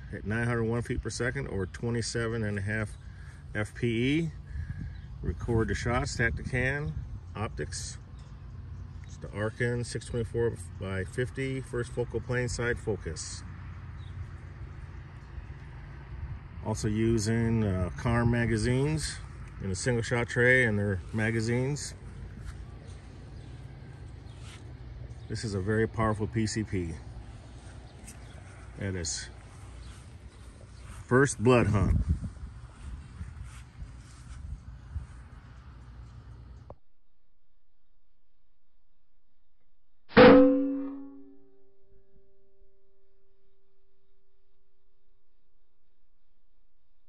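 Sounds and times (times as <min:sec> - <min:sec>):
lingering ringing tone: 0:40.2 - 0:41.6.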